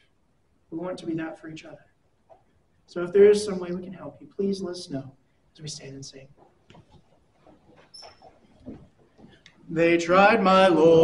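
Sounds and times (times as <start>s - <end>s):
congregation shuffling and rustling: 0.8s - 11.0s
short high squeak: 7.7s - 8.6s.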